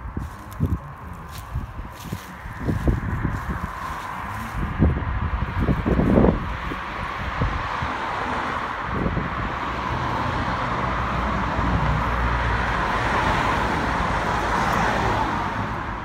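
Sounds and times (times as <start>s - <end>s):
car passing on road: 0.0s - 16.0s.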